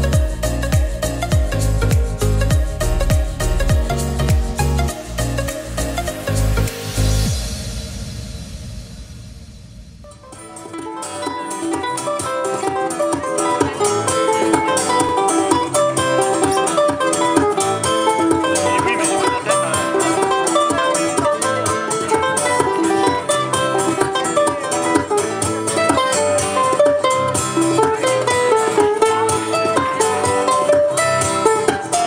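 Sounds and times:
two guitars playing lively tune: 0:00.0 - 0:06.5, 0:10.2 - 0:32.0.

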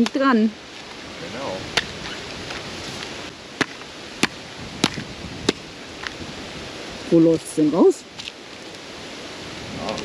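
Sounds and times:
machete chopping coconut: 0:03.6 - 0:05.6.

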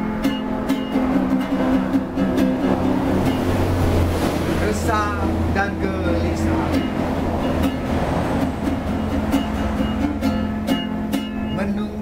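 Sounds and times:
plucked acoustic guitar notes: 0:00.0 - 0:12.0
road traffic rumble: 0:00.0 - 0:12.0
person singing: 0:11.5 - 0:12.0.

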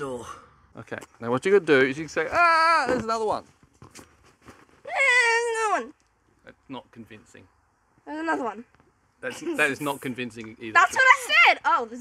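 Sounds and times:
girl squealing: 0:04.8 - 0:05.9.

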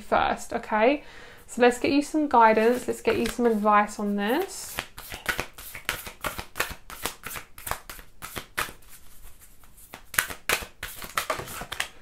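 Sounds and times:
cards being shuffled by hand: 0:02.5 - 0:12.0.

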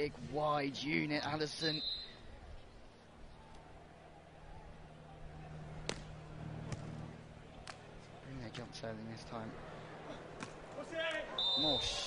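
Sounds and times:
stadium crowd hum: 0:00.0 - 0:12.0.

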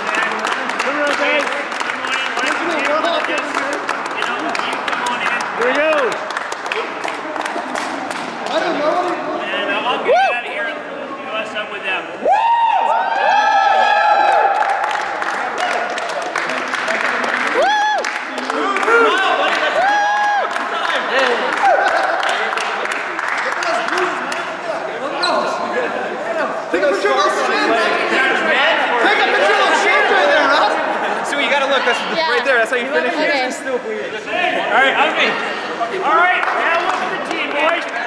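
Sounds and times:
group applause: 0:00.0 - 0:09.2, 0:12.4 - 0:24.8, 0:35.9 - 0:38.0
people whooping and shouting: 0:10.0 - 0:10.6, 0:12.2 - 0:16.0, 0:17.4 - 0:20.6, 0:21.4 - 0:22.4.

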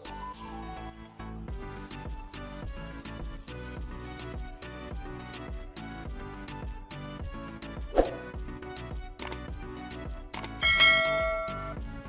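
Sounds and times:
background music: 0:00.0 - 0:12.0
bell-like ding: 0:10.6 - 0:11.8.

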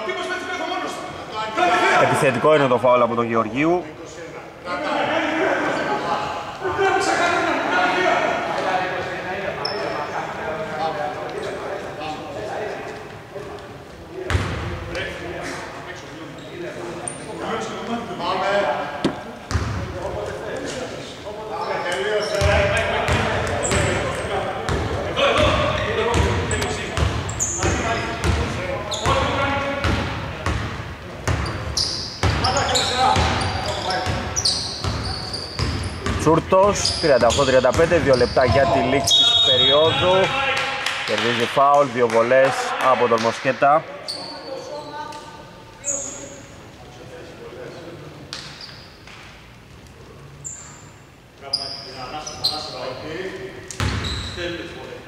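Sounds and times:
players' voices echoing: 0:00.0 - 0:48.5.

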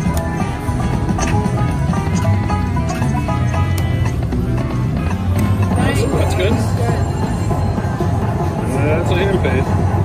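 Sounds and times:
slot machine bonus music: 0:00.0 - 0:09.5.

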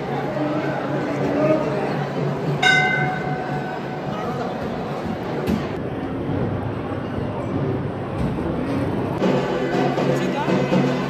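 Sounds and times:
steady background noise: 0:00.0 - 0:11.0
horn-like tone: 0:02.6 - 0:03.6.

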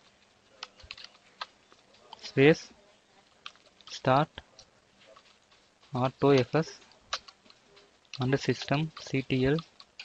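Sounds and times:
computer keyboard keystrokes: 0:00.6 - 0:02.2, 0:07.1 - 0:07.6.

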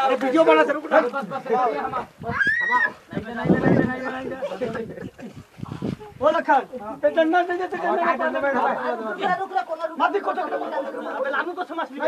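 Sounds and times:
people calling out: 0:02.2 - 0:04.6.

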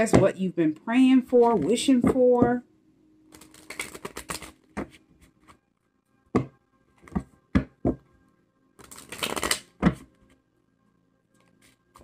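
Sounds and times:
cards being shuffled: 0:03.3 - 0:05.6, 0:08.8 - 0:10.4.

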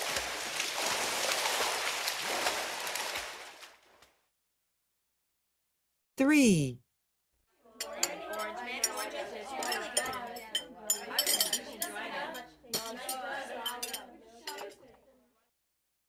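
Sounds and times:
dishes and cutlery clinking: 0:07.8 - 0:15.0.

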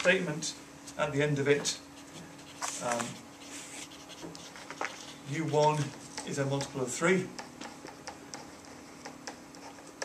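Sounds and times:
stylus tapping on whiteboard: 0:06.2 - 0:09.7.

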